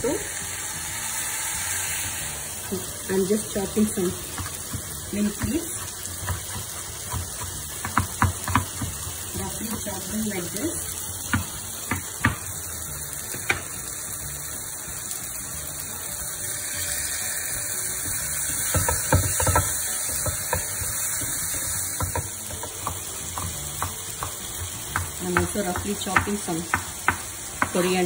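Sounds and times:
masala sizzling in a frying pan: 0:00.0 - 0:28.0
spatula scraping and knocking pan: 0:03.2 - 0:10.5, 0:17.5 - 0:28.0
knife chopping on wooden board: 0:05.4 - 0:09.0, 0:11.3 - 0:12.5.

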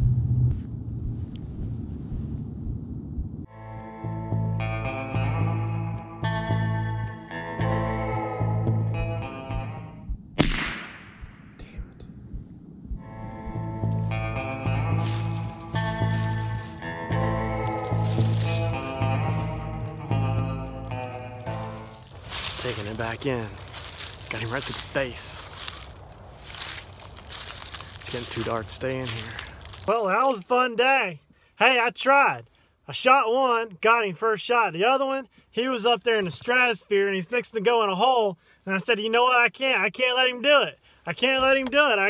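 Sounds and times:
background music with chords: 0:03.6 - 0:10.0, 0:13.0 - 0:22.9
rifle shot with echo: 0:10.4 - 0:11.6.

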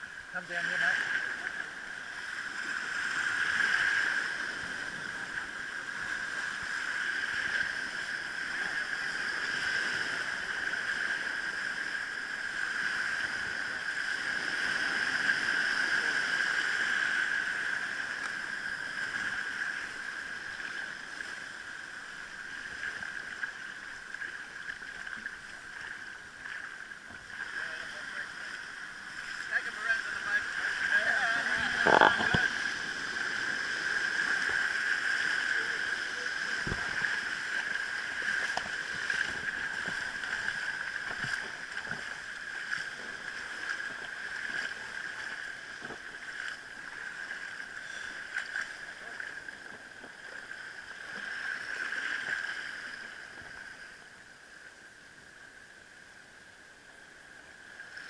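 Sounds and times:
small waves washing over sand: 0:00.0 - 0:54.1
high whine: 0:27.3 - 0:43.9.

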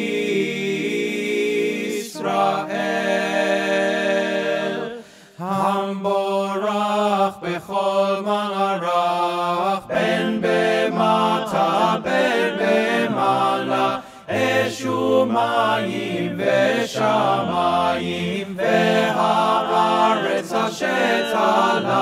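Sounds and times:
choir singing: 0:00.0 - 0:22.0
deep bass voices singing: 0:00.0 - 0:22.0.

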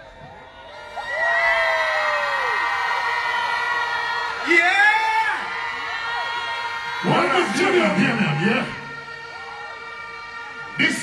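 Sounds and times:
crowd cheering: 0:00.0 - 0:11.0.

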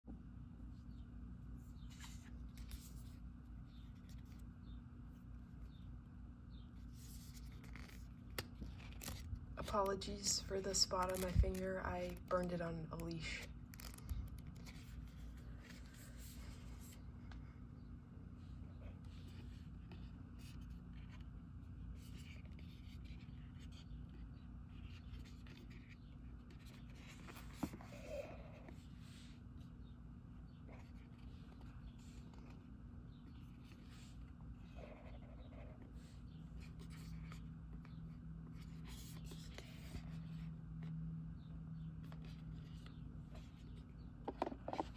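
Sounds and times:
steady low hum: 0:00.1 - 0:44.9.

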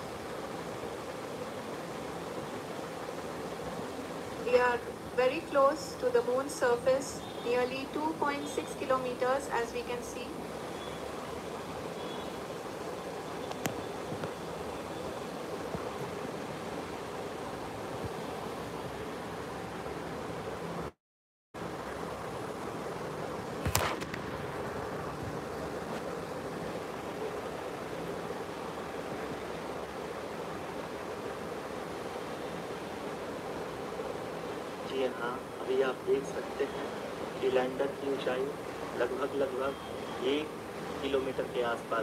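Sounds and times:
steady hiss-like background noise: 0:00.0 - 0:21.0, 0:21.6 - 0:42.0
short sharp crackle: 0:23.6 - 0:24.5.

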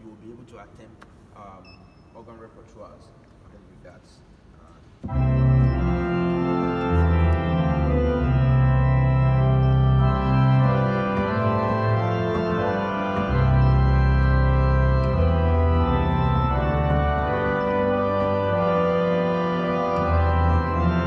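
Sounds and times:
church organ chords: 0:05.0 - 0:21.0
deep organ pedal bass: 0:05.0 - 0:21.0.

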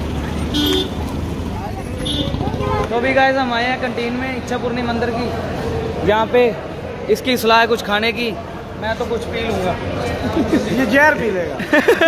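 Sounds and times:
car horn toot: 0:00.5 - 0:01.0, 0:02.0 - 0:03.0.

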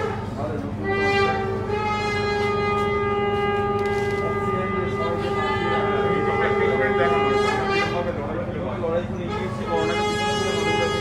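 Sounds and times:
conch shells blown: 0:00.0 - 0:08.2, 0:09.2 - 0:11.0
crowd voices: 0:00.0 - 0:11.0.

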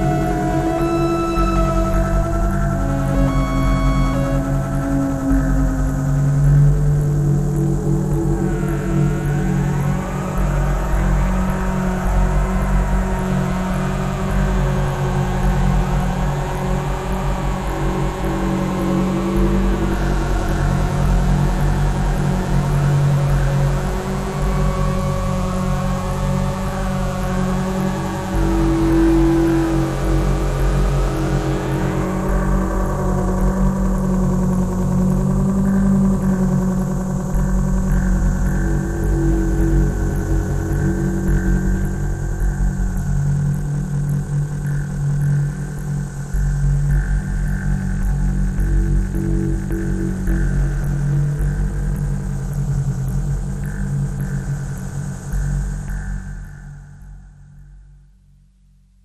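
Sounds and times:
synthesizer drones: 0:00.0 - 0:57.6.

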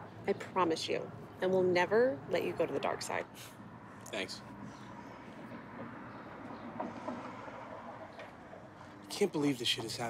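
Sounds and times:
outdoor ambient noise: 0:00.0 - 0:10.0.

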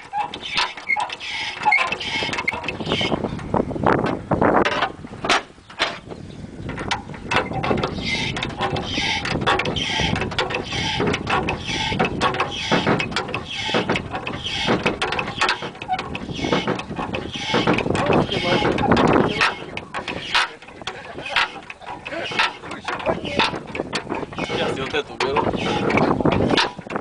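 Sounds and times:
engine knocks and clicks: 0:00.0 - 0:27.0.

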